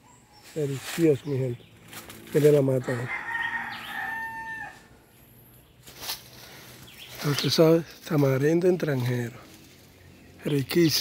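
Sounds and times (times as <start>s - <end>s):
rooster crowing: 2.8s - 5.0s.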